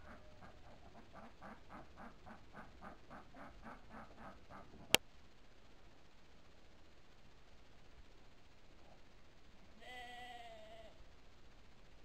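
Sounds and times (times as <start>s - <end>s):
sheep bleating: 9.8s - 11.0s.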